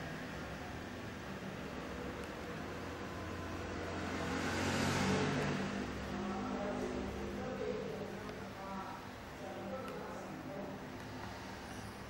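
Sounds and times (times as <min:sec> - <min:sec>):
vehicle passing by: 0:01.4 - 0:07.9.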